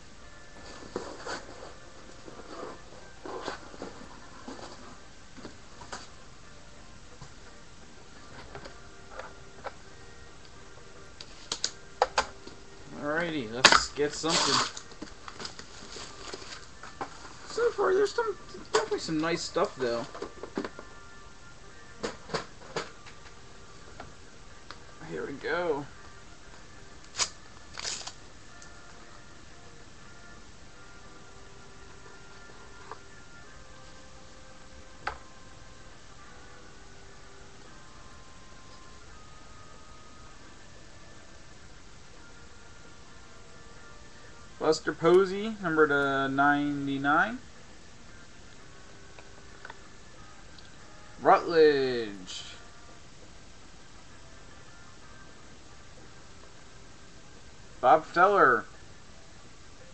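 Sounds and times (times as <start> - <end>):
card packs rustling: 0.6 - 5.0, 13.5 - 20.8, 27.2 - 28.2
plastic wrapping tearing: 13.6 - 16.7, 27.1 - 28.2.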